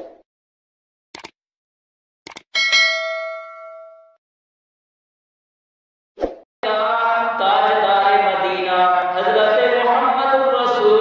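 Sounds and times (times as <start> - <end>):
mouse clicks: 2.3 - 2.5
bell ding: 2.6 - 4.2.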